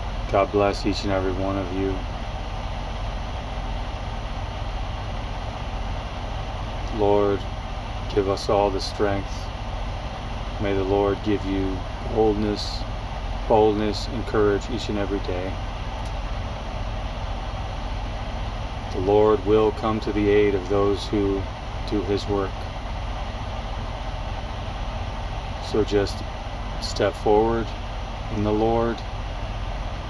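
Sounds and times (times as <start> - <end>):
climate fan hiss: 0.0 - 30.0
engine idling: 0.0 - 30.0.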